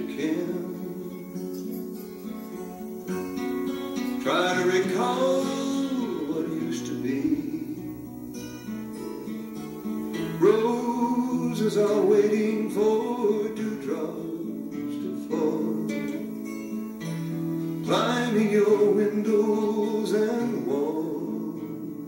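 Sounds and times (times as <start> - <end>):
acoustic guitar song: 0.0 - 22.0.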